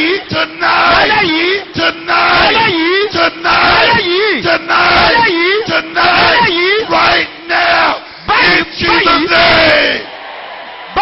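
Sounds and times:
congregation shouting: 0.0 - 11.0.

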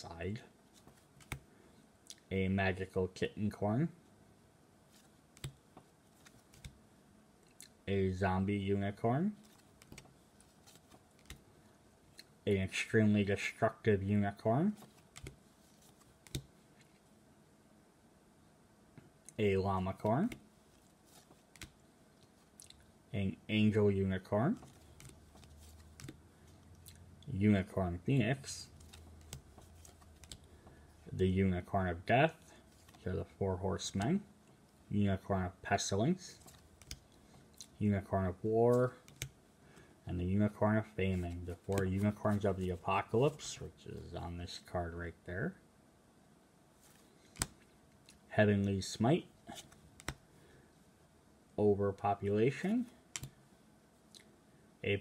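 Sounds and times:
playing cards clicking and sliding: 0.7 - 1.5, 4.9 - 6.8, 9.2 - 11.5, 14.6 - 17.0, 19.7 - 22.6, 24.3 - 26.7, 27.5 - 31.2, 32.4 - 34.2, 36.3 - 37.9, 38.7 - 39.4, 41.0 - 43.6, 46.8 - 48.3, 49.4 - 50.3, 52.8 - 53.4
cards clicking together: 28.8 - 30.5, 47.3 - 47.6, 49.6 - 50.2.

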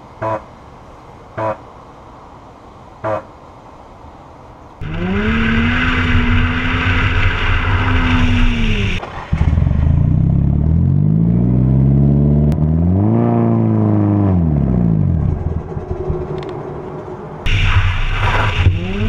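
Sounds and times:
car engine revving and idling: 4.8 - 17.5, 18.2 - 19.0
car engine running on road: 4.8 - 19.0.

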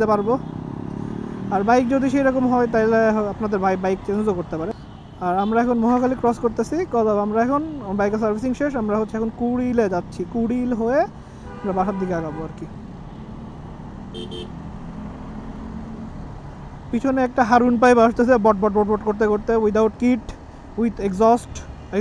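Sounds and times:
motorcycle riding: 0.0 - 4.8, 12.3 - 22.0
person talking: 1.5 - 12.8, 16.9 - 22.0
vehicle horn toot: 11.5 - 12.4, 14.1 - 14.6.

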